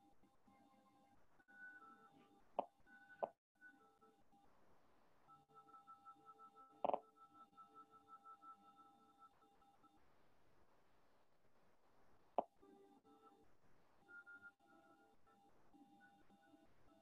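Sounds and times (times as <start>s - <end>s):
faint sustained background music: 0.0s - 10.1s, 12.4s - 17.0s.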